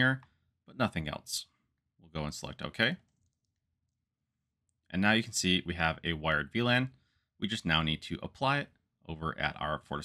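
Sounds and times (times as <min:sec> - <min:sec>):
man speaking: 0:00.0 - 0:03.1, 0:04.9 - 0:10.0.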